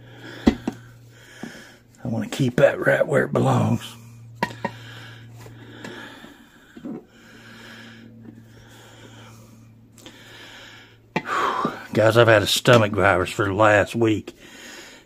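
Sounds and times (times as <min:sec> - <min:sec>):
man breathing heavily: 0:00.0 - 0:02.0, 0:03.8 - 0:12.0, 0:14.3 - 0:15.0.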